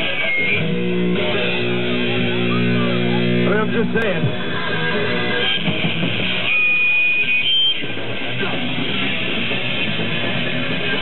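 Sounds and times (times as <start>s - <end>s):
punk rock band playing: 0.0s - 11.0s.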